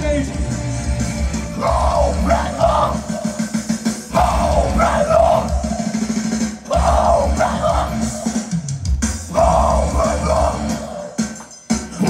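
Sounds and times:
metal band playing loud: 0.0 - 12.0
screamed vocals: 1.6 - 6.0, 6.7 - 8.5, 9.3 - 11.2.

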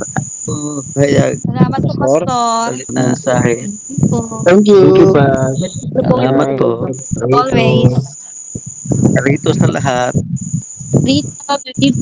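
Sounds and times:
people speaking over video call: 0.0 - 8.2, 8.9 - 10.2, 11.1 - 12.0
high-pitched steady tone: 0.0 - 12.0.

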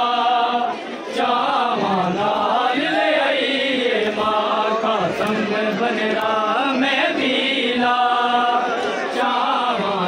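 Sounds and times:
person chanting a mourning lament: 0.0 - 10.0.

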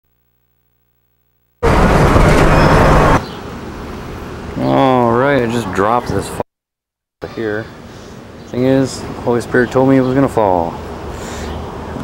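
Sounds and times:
car road and engine noise: 1.6 - 6.4, 7.4 - 12.0.

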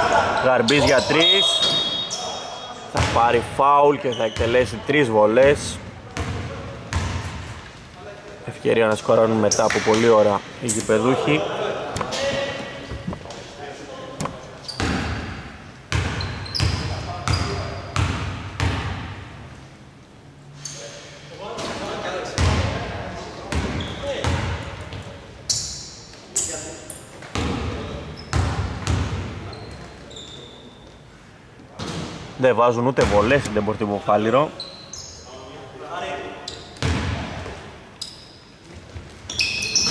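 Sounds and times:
shoe squeaks: 0.4 - 2.9, 4.0 - 4.8, 14.2 - 15.3, 16.0 - 18.0, 20.5 - 21.1, 23.6 - 24.2, 25.4 - 27.2, 27.8 - 28.6, 29.4 - 31.1, 34.5 - 35.4, 36.4 - 36.9, 38.0 - 38.6, 39.2 - 39.9.

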